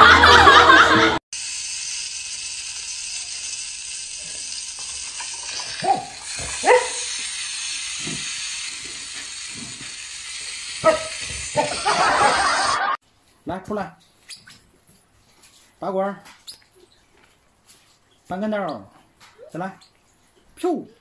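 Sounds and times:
dog barking: 5.8 - 7.1, 10.8 - 11.7.

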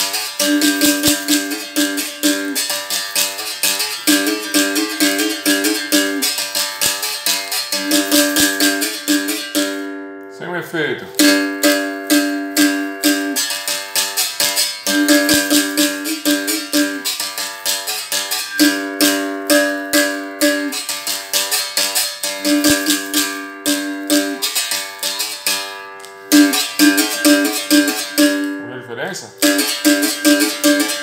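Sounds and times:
berimbau struck with stick: 0.0 - 9.9, 11.1 - 25.2, 26.3 - 28.6, 29.4 - 31.0.

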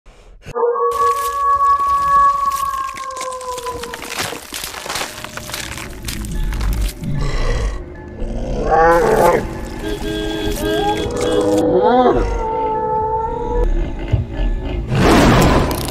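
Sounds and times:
music: 4.4 - 11.6.

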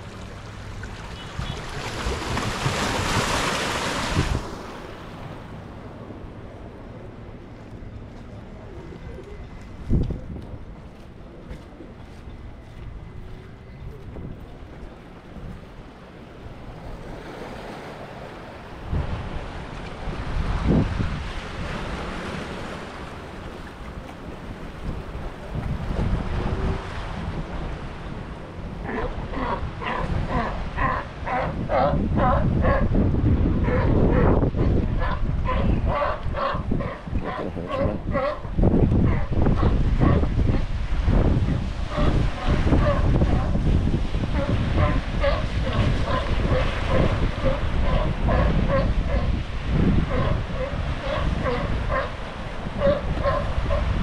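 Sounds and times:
waves washing against rocks: 0.0 - 5.6
wind buffeting microphone: 1.1 - 54.0
sea lion barking: 28.8 - 40.7, 41.8 - 54.0.

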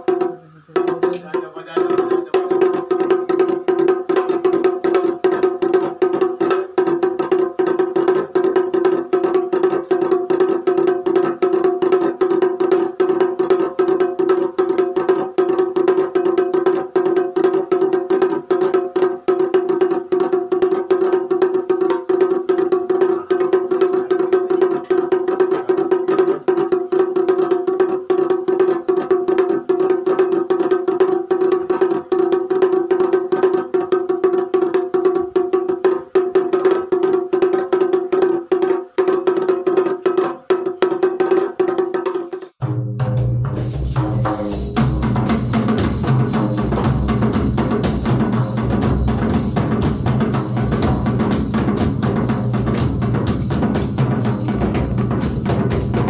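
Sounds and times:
kettle drum beaten rapidly: 0.0 - 56.0.

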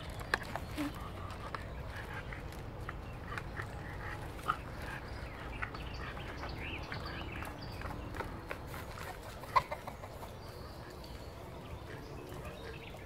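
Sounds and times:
small birds chirping: 0.0 - 13.0
chickens clucking: 0.2 - 13.0.

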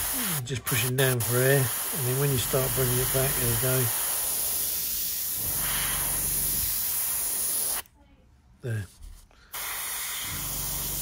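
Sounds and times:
airbrush spraying hiss: 0.0 - 7.9, 9.5 - 11.0.

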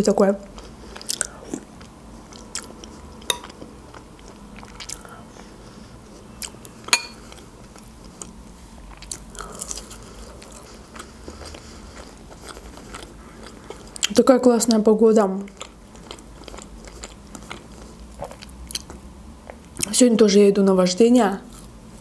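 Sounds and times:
person chewing food: 0.5 - 14.2, 15.5 - 19.9, 21.5 - 22.0.

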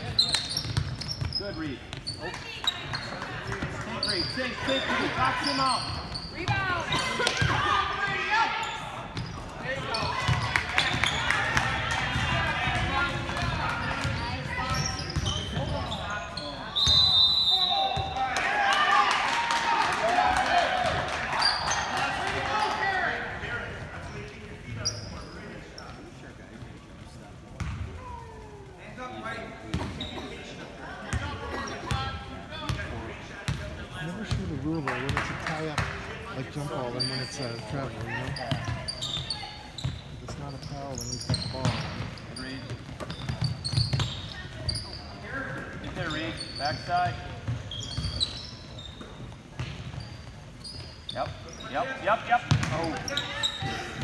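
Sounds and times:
voices echoing in gym: 0.0 - 54.0.

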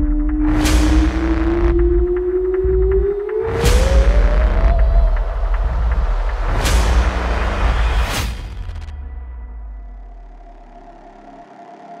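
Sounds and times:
deep rumbling cinematic boom: 0.0 - 11.1.

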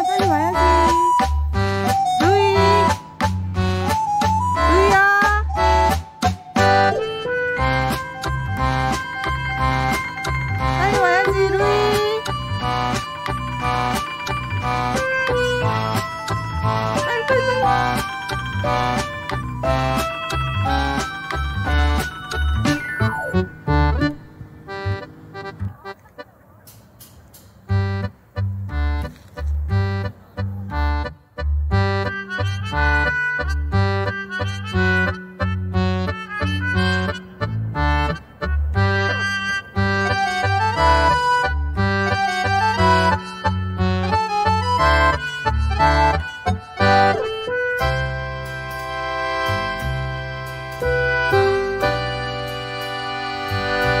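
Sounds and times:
cheerful instrumental music: 0.0 - 54.0.

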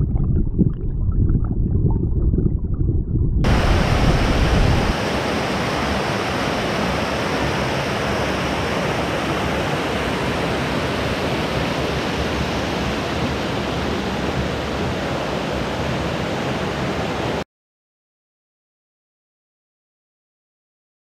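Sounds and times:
creek rushing over rocks: 3.4 - 17.4.

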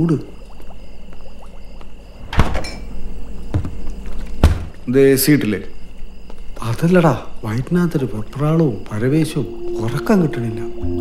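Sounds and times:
door thunk with rattle: 2.2 - 2.9, 3.5 - 3.8, 4.4 - 4.8.

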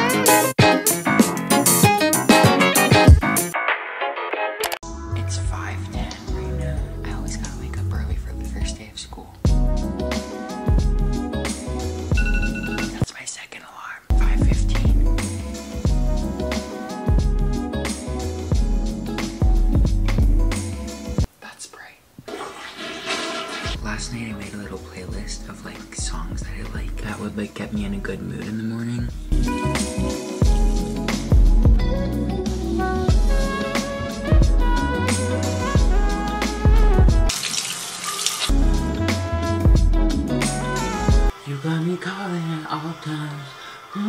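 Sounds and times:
music with heavy bass beat: 0.0 - 3.6, 14.2 - 21.3, 29.2 - 37.3, 38.5 - 41.3
running water rushing: 22.2 - 23.8, 37.3 - 38.5.

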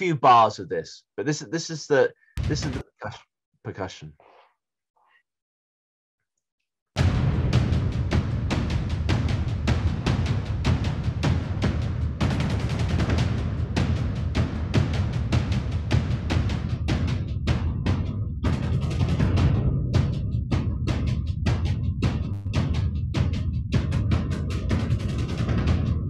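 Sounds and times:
low drums in driving rhythm: 2.4 - 2.9, 7.0 - 26.0.

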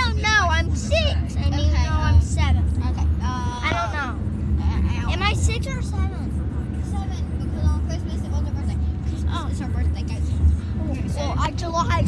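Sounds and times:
girls' high-pitched voices: 0.0 - 12.0.

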